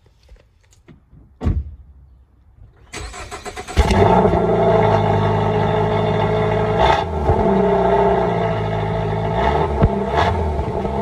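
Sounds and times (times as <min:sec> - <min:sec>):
car engine starting: 0:02.8 - 0:11.0.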